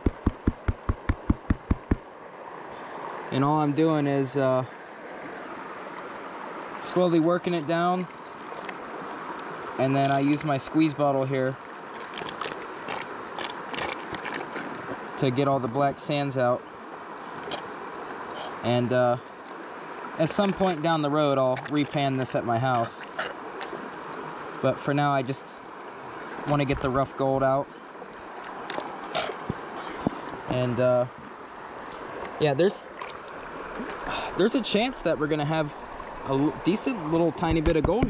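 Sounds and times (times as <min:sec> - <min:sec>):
creek running: 0:00.0 - 0:38.0.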